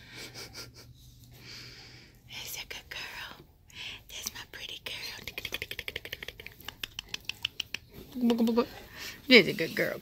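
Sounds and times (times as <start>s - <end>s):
person whispering: 2.3s - 6.6s.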